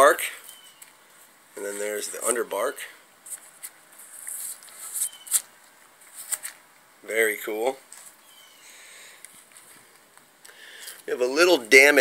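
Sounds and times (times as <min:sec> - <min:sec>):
hands scraping wood bark: 0:03.3 - 0:06.5.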